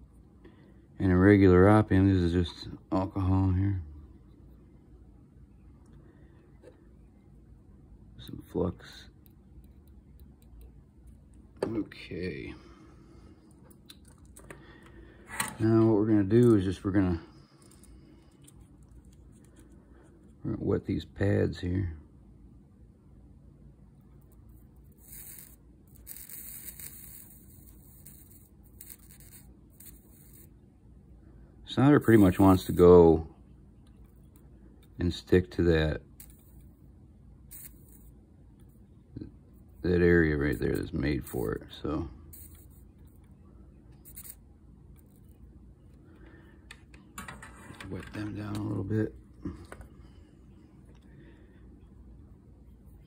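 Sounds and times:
steady low hum: 0:00.0 - 0:53.0
soldering iron sizzling: 0:25.0 - 0:30.5, 0:37.5 - 0:38.2, 0:42.3 - 0:42.8, 0:44.0 - 0:44.4.

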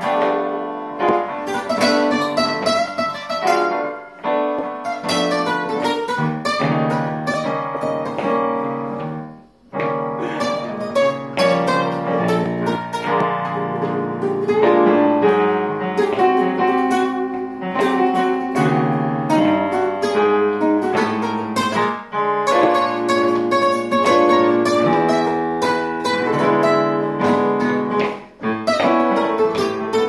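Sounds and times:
guitars playing blues: 0:00.0 - 0:30.0.

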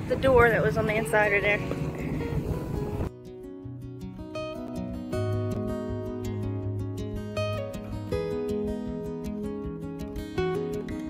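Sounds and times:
outdoor noise: 0:00.0 - 0:11.0
plucked acoustic guitar music: 0:00.0 - 0:11.0.

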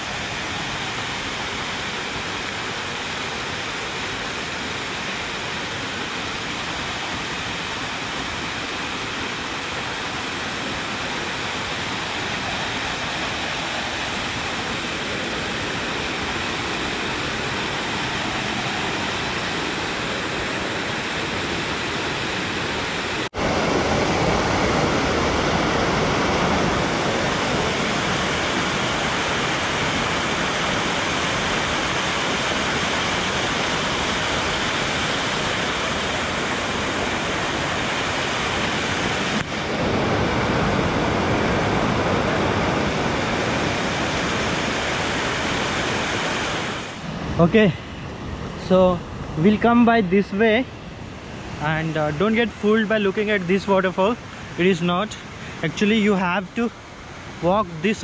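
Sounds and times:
waterfall rushing over boulders: 0:00.0 - 0:58.0.

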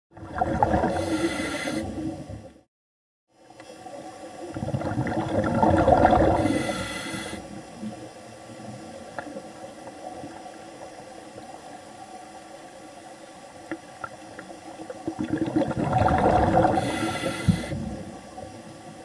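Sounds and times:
exhaled bubbles rushing: 0:00.1 - 0:02.4, 0:04.5 - 0:06.6, 0:14.9 - 0:17.1
underwater wash: 0:00.1 - 0:02.6, 0:03.5 - 0:19.0.

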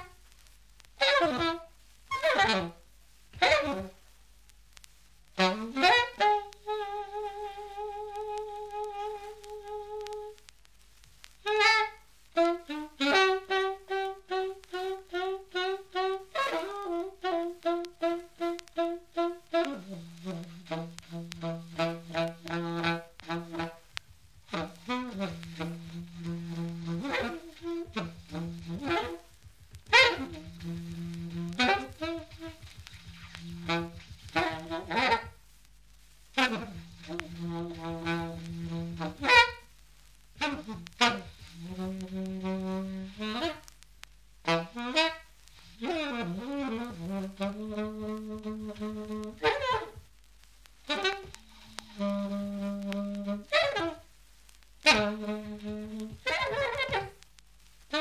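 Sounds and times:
alto saxophone playing: 0:00.0 - 0:00.2, 0:01.0 - 0:04.0, 0:05.4 - 0:10.4, 0:11.4 - 0:35.4, 0:36.3 - 0:39.7, 0:40.4 - 0:43.7, 0:44.4 - 0:50.0, 0:50.8 - 0:54.1, 0:54.8 - 0:57.2.

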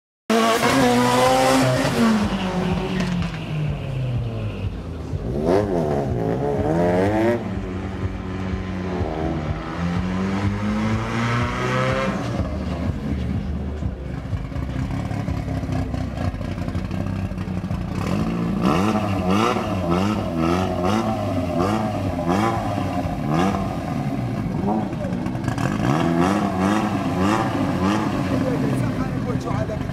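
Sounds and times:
car engines revving: 0:00.3 - 0:29.9.

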